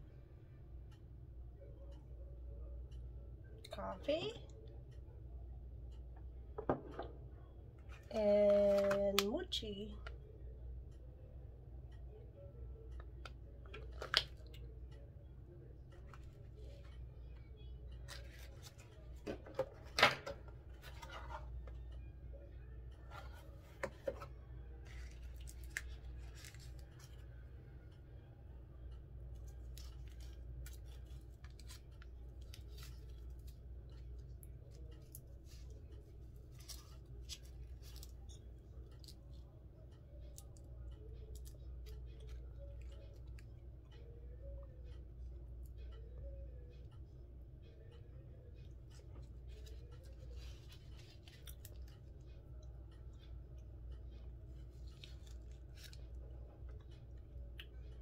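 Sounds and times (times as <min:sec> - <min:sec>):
steady low hum: 0:00.0 - 0:58.0
person chewing sticky food: 0:24.9 - 0:27.3, 0:49.0 - 0:52.2.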